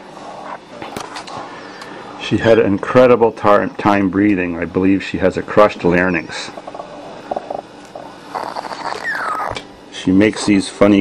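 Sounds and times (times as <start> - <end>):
kitten growling: 7.2 - 9.7.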